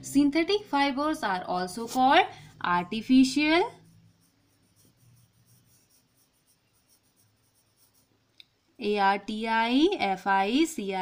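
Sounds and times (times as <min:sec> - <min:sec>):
pencil scratching on paper: 0:00.8 - 0:08.2.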